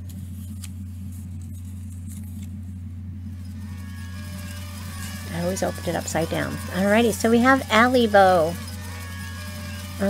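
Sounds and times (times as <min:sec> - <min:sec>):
paper being unfolded: 0:00.0 - 0:02.8
steady low hum: 0:00.0 - 0:10.0.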